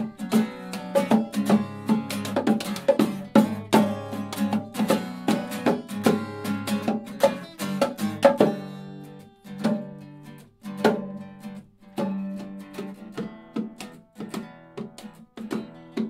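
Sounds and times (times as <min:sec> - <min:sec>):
acoustic guitars strumming: 0:00.0 - 0:16.0
hand drums: 0:00.0 - 0:16.0.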